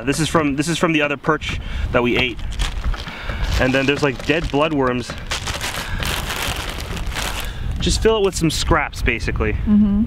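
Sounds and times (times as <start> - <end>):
wind rumble on microphone: 0.0 - 10.0
plastic bag crinkling: 2.4 - 7.6.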